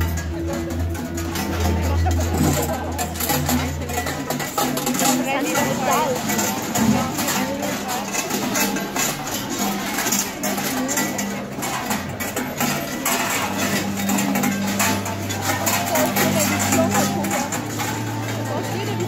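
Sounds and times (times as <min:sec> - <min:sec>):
music with low held notes: 0:00.0 - 0:08.4, 0:11.9 - 0:19.0
crowd chatter: 0:00.0 - 0:19.0
large cowbells clanging: 0:00.0 - 0:19.0.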